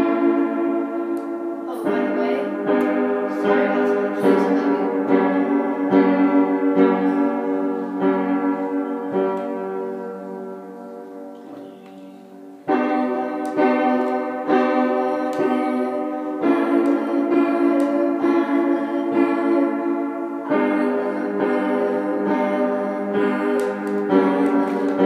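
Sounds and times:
upright piano slow chords: 0:00.0 - 0:25.0.

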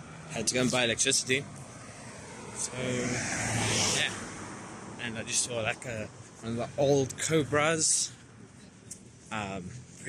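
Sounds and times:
car passing close by: 0:01.6 - 0:06.0.

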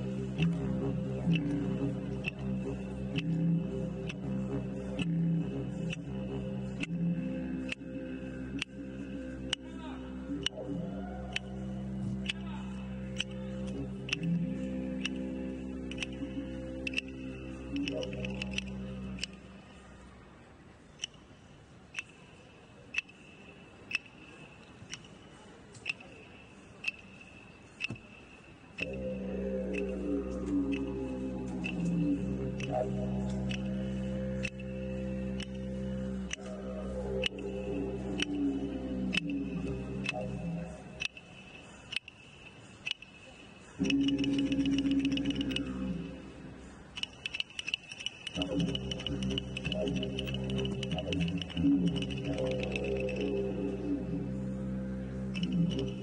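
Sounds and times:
didgeridoo drone: 0:00.0 - 0:20.4, 0:26.9 - 0:56.0
clapsticks clicking: 0:01.3 - 0:02.5, 0:15.9 - 0:19.4, 0:28.8 - 0:35.7, 0:39.1 - 0:45.7, 0:46.9 - 0:53.4.

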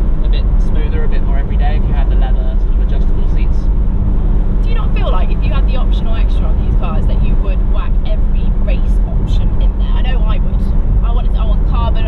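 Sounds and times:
car engine running: 0:00.0 - 0:12.0
wind buffeting: 0:00.0 - 0:12.0
people talking: 0:00.2 - 0:03.7, 0:04.6 - 0:12.0.

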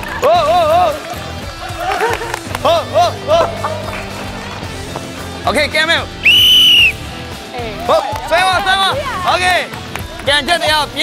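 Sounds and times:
referee's whistle blast: 0:06.2 - 0:07.0.

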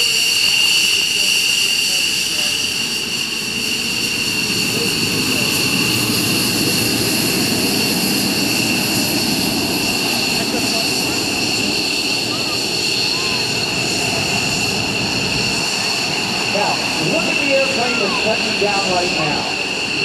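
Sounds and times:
deep jet rumble: 0:00.0 - 0:20.0
jet engines whining: 0:00.0 - 0:20.0.

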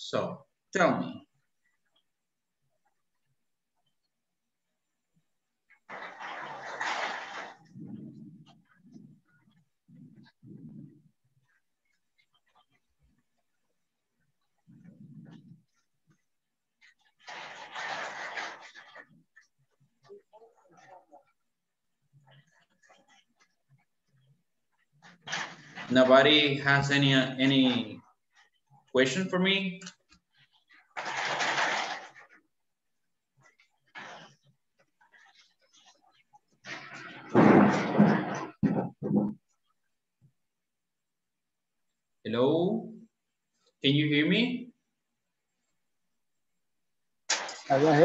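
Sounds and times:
man speaking: 0:00.0 - 0:01.2, 0:25.9 - 0:28.0, 0:28.9 - 0:29.9, 0:42.3 - 0:43.0, 0:43.8 - 0:44.7, 0:47.7 - 0:48.0.

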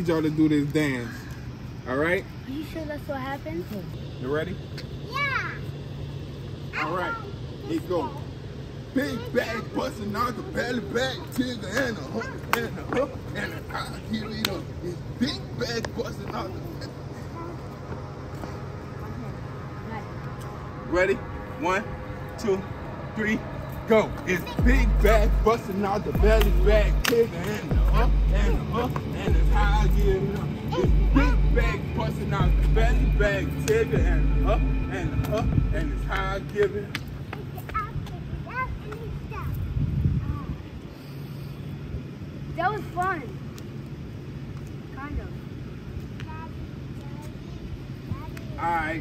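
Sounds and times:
low outdoor hum: 0:00.0 - 0:49.0
wind buffeting microphone: 0:35.0 - 0:41.0.

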